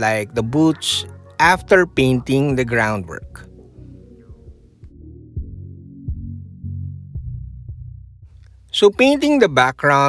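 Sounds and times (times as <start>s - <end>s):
man's voice: 0.0s - 3.5s, 8.7s - 10.0s
quiet background music with bass: 0.0s - 10.0s.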